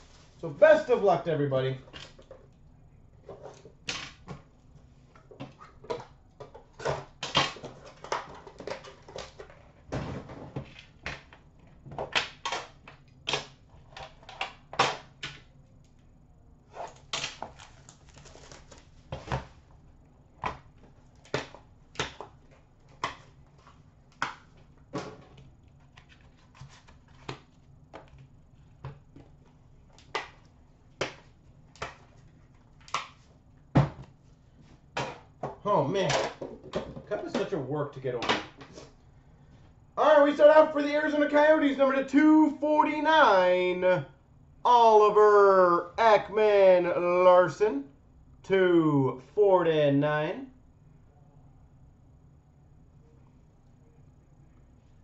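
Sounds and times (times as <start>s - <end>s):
packaging scraping and rustling: 16.7s - 19.1s.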